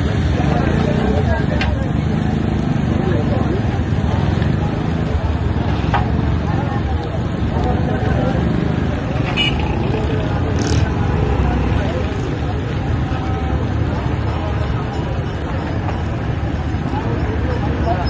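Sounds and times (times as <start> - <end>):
background chatter: 0.0 - 18.0
steady traffic: 0.0 - 18.0.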